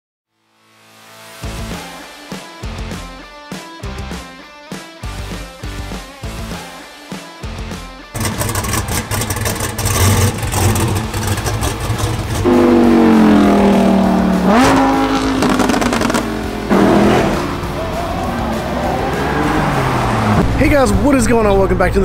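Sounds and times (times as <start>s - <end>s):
loud pitched exhaust note: 8.2s - 20.8s
supercar engines revving: 8.2s - 22.0s.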